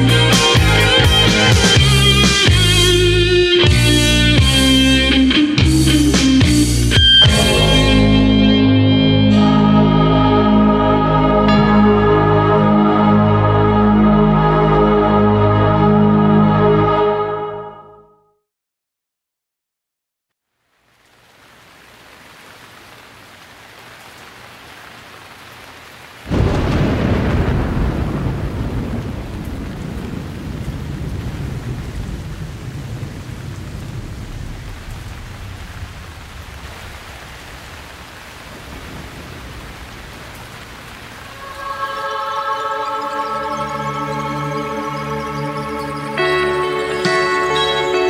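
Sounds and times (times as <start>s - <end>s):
rain: 0.0s - 13.4s, 20.4s - 48.0s
sustained musical chords: 0.1s - 17.8s, 41.3s - 48.0s
thunderclap rumbling: 7.2s - 9.0s, 26.3s - 42.4s.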